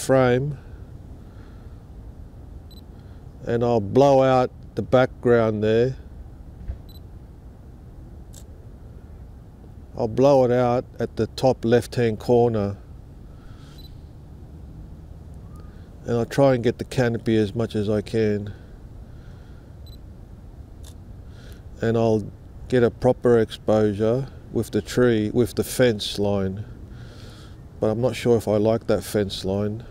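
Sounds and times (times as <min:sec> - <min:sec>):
steady low rumble: 0:00.0 - 0:29.9
camera autofocus beep: 0:06.8 - 0:07.1, 0:13.7 - 0:14.0, 0:19.8 - 0:20.0.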